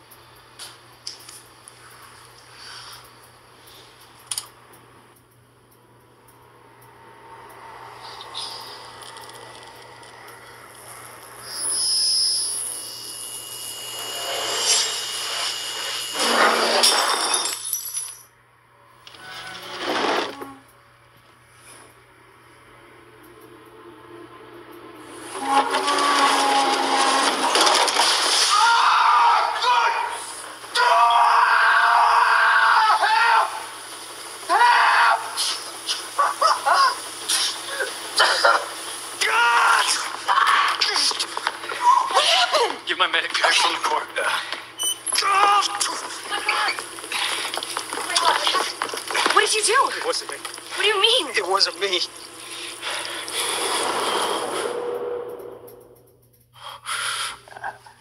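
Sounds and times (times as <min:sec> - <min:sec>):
sizzling hiss with ringing tones: 0:00.0 - 0:04.3, 0:05.8 - 0:16.2.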